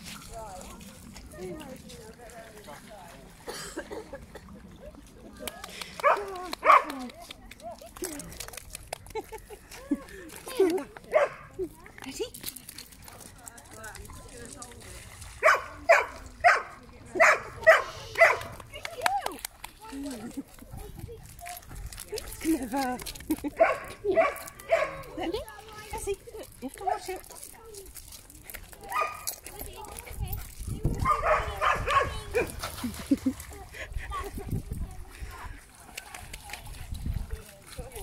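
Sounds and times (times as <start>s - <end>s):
dog barking: 6.0s - 6.9s, 11.1s - 11.5s, 15.4s - 18.5s, 23.6s - 25.1s, 28.9s - 29.3s, 31.0s - 32.5s.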